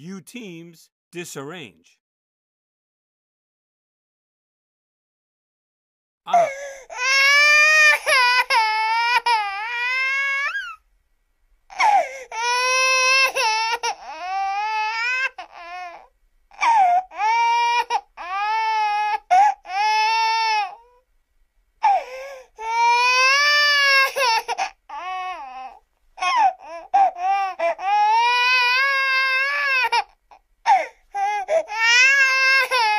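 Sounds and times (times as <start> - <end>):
baby crying: 6.3 - 10.8, 11.7 - 21.0, 21.8 - 32.9.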